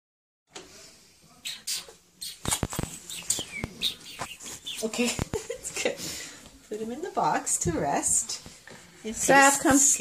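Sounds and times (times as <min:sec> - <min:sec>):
small bird chirping: 0:01.4 - 0:05.0.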